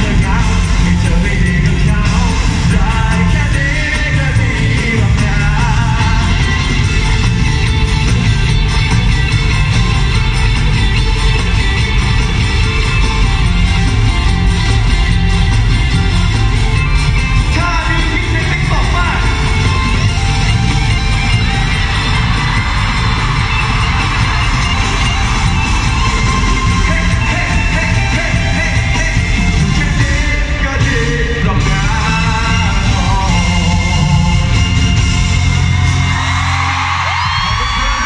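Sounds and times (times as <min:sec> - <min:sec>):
live pop song with singing: 0:00.0 - 0:07.5, 0:16.5 - 0:38.0
fans yelling and whooping: 0:02.0 - 0:30.6, 0:32.1 - 0:38.0.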